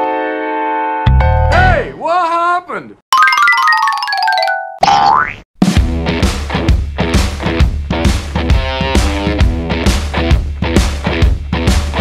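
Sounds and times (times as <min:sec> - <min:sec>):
descending run of bright notes: 0:03.2 - 0:04.7
comic boing glide: 0:04.8 - 0:05.4
rock music with drums: 0:05.6 - 0:12.0.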